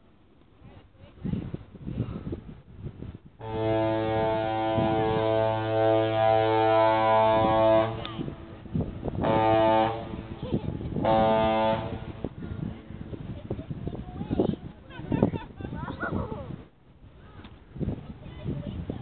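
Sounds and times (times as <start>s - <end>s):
ship's horn blasts: 3.4s - 13.2s.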